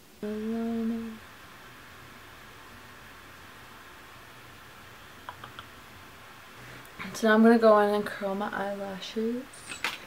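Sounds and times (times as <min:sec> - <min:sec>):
woman humming: 0:00.2 - 0:01.2.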